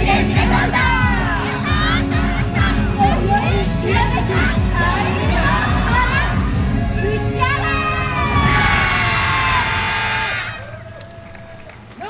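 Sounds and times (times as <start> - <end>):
dance music: 0.0 - 9.9
crowd noise with calls: 0.0 - 12.0
dancers shouting together: 8.1 - 10.9.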